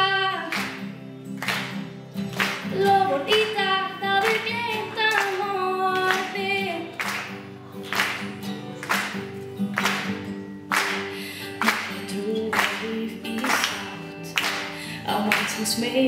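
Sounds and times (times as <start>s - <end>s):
woman singing slow song: 0.0s - 0.6s, 2.6s - 7.0s, 11.5s - 16.0s
acoustic guitar: 0.0s - 16.0s
steady clapping beat: 0.5s - 15.7s.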